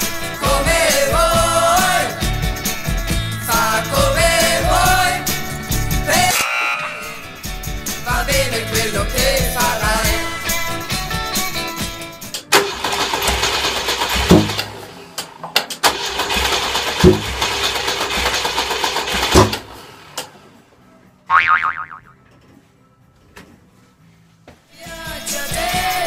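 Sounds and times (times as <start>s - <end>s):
background music: 0.0s - 13.2s, 24.7s - 26.0s
car engine cranking on starter: 12.5s - 20.4s
falling-pitch boing sound effect: 21.3s - 22.2s.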